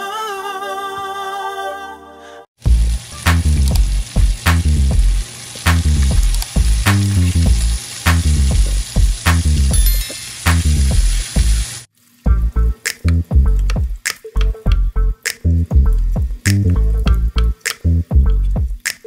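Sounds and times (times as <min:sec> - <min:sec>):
bacon sizzling in a frying pan: 0:02.6 - 0:12.3
music with steady bass beat: 0:02.7 - 0:11.6, 0:12.3 - 0:19.0.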